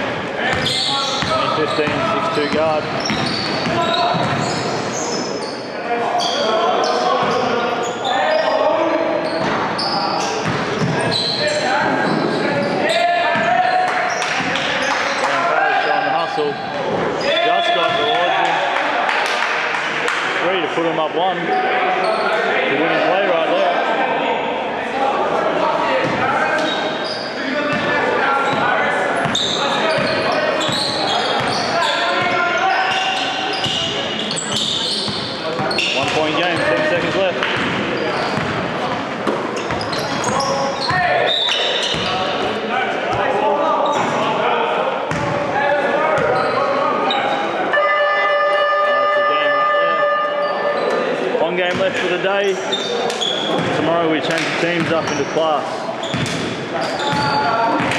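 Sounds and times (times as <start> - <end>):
indistinct echoing voices: 0.0 - 57.9
basketball bouncing on wooden floor: 3.1 - 4.4
scoreboard buzzer: 47.7 - 50.6.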